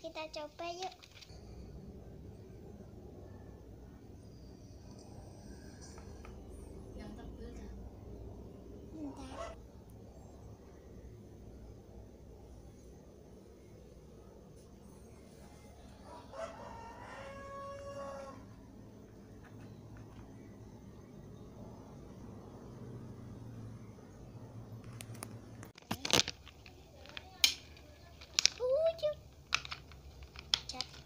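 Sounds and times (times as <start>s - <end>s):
faint room noise: 0.0s - 31.0s.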